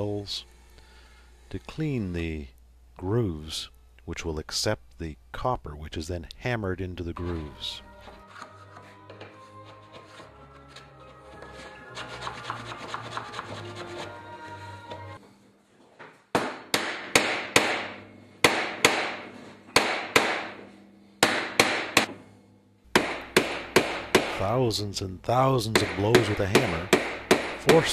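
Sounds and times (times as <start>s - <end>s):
soft background music: 7.0s - 15.2s
mallet striking copper sheet: 16.4s - 20.6s.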